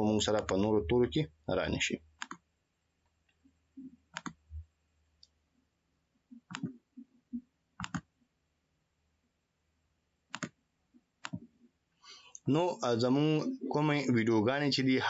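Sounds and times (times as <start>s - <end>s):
computer mouse clicking: 0.3s - 0.6s, 2.2s - 2.4s, 4.1s - 4.4s, 6.5s - 6.8s, 7.8s - 8.1s, 10.3s - 10.6s, 11.2s - 11.5s.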